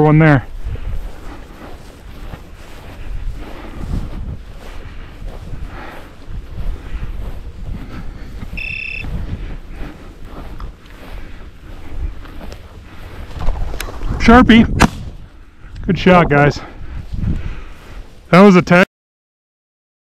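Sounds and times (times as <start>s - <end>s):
wind buffeting microphone: 0.0s - 18.3s
footsteps through dry grass: 0.0s - 18.8s
short high electronic beep: 8.6s - 9.1s.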